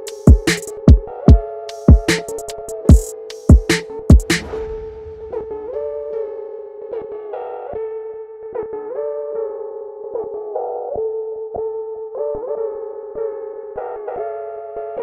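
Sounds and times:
trap beat synthesizer lead: 0:00.0 - 0:05.9.

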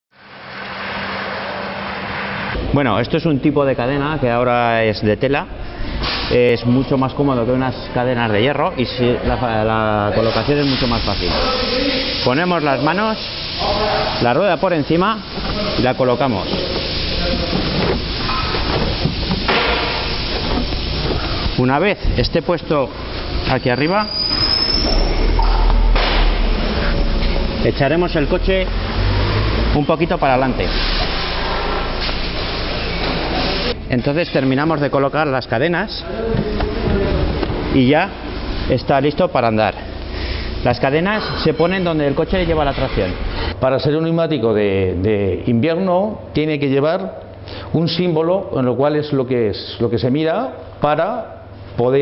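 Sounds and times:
motor vehicle rumble: 0:00.1 - 0:02.7, 0:15.2 - 0:22.3, 0:24.2 - 0:33.9
tyres hissing on wet road: 0:00.2 - 0:02.6, 0:10.2 - 0:33.8.

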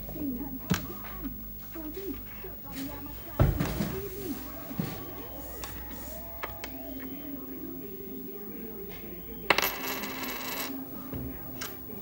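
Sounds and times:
coin hitting wooden tabletop: 0:09.5 - 0:10.8.

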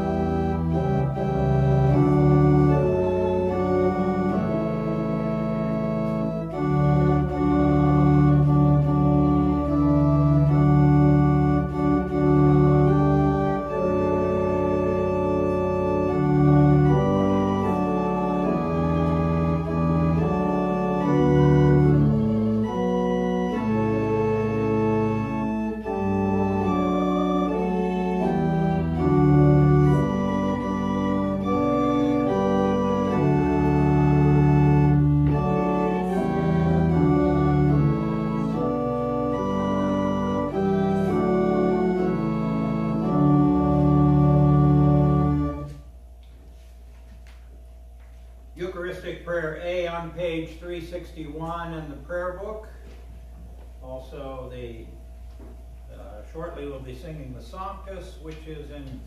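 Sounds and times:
church organ playing a hymn: 0:00.0 - 0:59.0.

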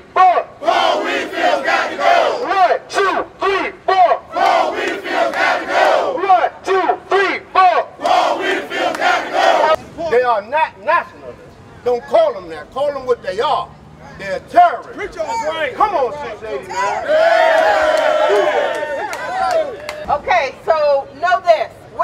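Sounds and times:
crowd chanting call-and-response: 0:00.0 - 0:09.8.

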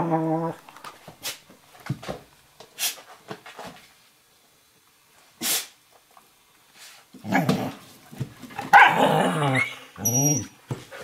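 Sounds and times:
dogs growling and barking: 0:07.2 - 0:07.8, 0:08.5 - 0:10.6.

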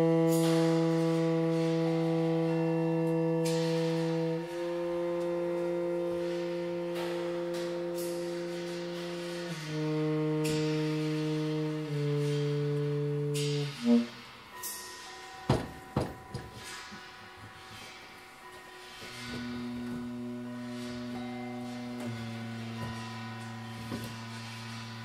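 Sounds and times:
tenor saxophone long notes: 0:00.0 - 0:14.8, 0:18.7 - 0:25.0
bright percussion strokes: 0:00.0 - 0:25.0.

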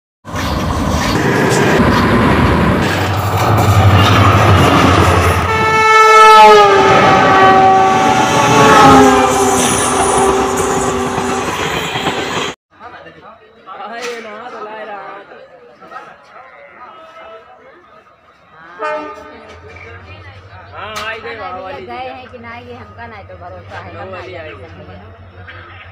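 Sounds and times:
train wheels rumbling on track: 0:00.3 - 0:12.6
locomotive horn: 0:05.3 - 0:11.6, 0:18.7 - 0:19.6.

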